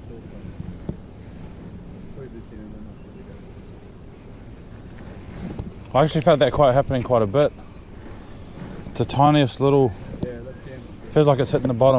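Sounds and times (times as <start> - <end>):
low wind: 0.0 - 11.9
water around a boat: 0.0 - 11.9.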